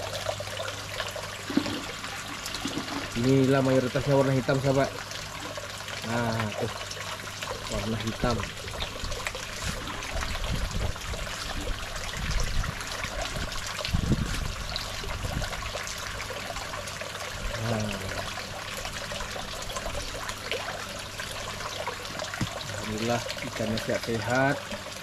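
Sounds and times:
water trickling and splashing: 0:00.0 - 0:25.0.

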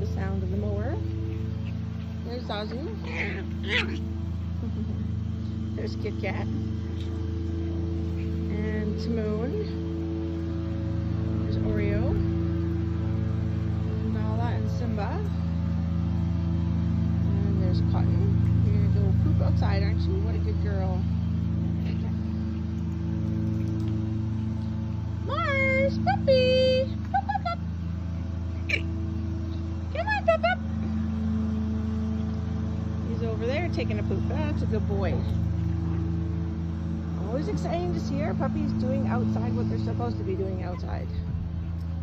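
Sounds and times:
lawn mower engine running: 0:00.0 - 0:42.0
high-pitched yelps: 0:03.0 - 0:04.0.

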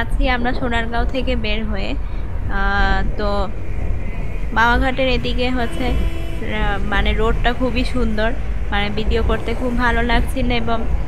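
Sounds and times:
woman's voice: 0:00.0 - 0:03.5, 0:04.5 - 0:11.0
road and engine rumble: 0:00.0 - 0:11.0.

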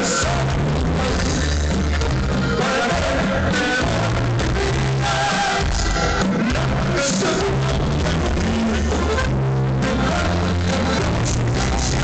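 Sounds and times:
live band with heavy bass and drums: 0:00.0 - 0:12.0.

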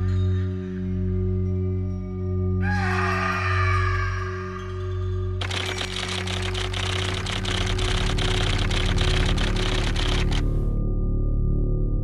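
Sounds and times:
music: 0:00.0 - 0:12.0
loud hiss with rapid clicks: 0:05.4 - 0:10.7.

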